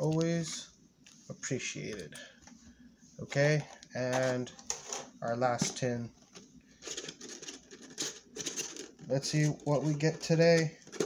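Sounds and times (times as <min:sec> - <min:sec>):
packaging rustling and crinkling: 0:03.6 - 0:11.0.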